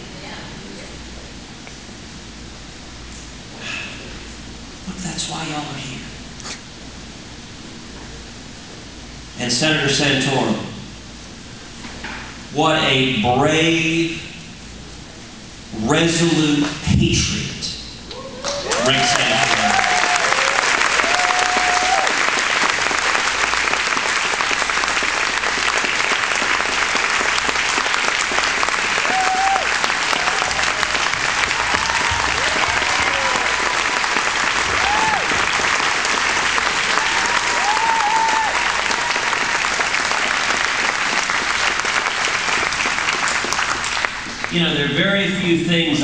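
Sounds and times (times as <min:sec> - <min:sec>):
audience applauding: 0:18.4 - 0:44.6.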